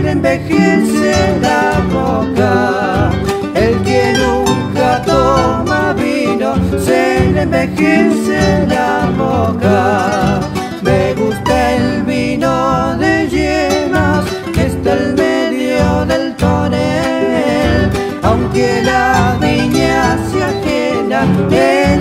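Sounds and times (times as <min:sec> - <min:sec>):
guitar bass: 0:00.0 - 0:22.0
melodic guitar line: 0:00.0 - 0:22.0
strummed acoustic guitars: 0:00.0 - 0:22.0.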